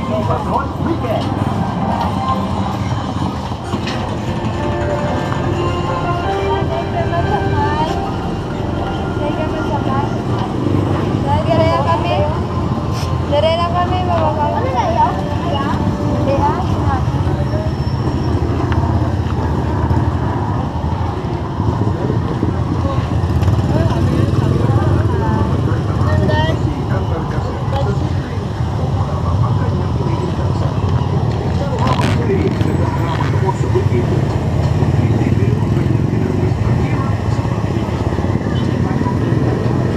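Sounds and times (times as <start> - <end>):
people talking: 0.0 - 19.4, 21.7 - 39.9
motorcycle traffic rumble: 0.0 - 39.9.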